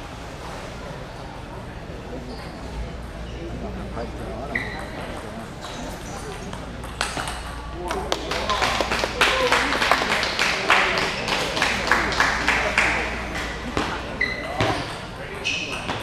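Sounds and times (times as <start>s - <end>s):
crowd murmur: 0.0s - 16.0s
spectators applauding: 8.0s - 13.4s.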